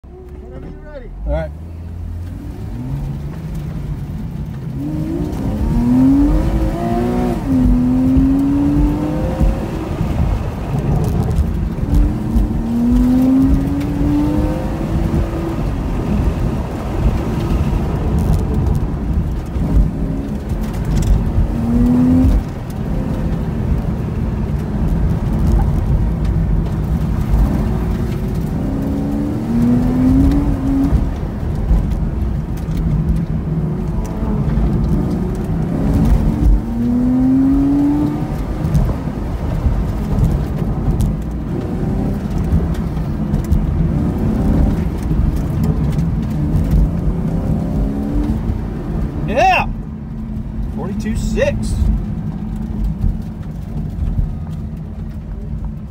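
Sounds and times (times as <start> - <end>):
car engine revving: 0.0 - 55.9
low road rumble: 0.0 - 55.9.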